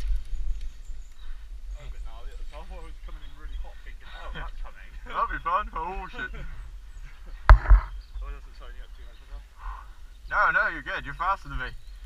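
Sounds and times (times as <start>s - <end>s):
sharp knock: 7.5s - 7.9s
low double thump: 7.5s - 8.0s.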